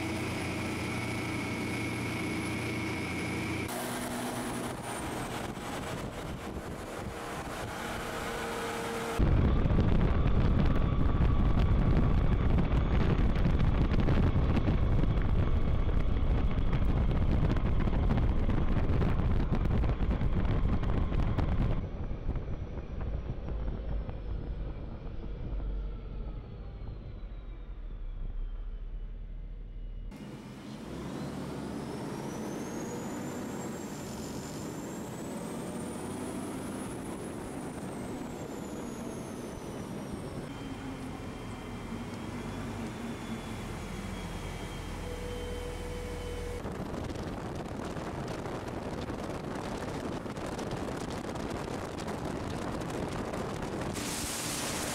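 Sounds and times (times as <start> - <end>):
faint high whine: 0.0 - 47.4, 53.8 - 54.9
armoured car engine and road noise: 0.0 - 54.9
wind on microphone: 4.4 - 8.6, 9.2 - 26.4, 46.1 - 54.9.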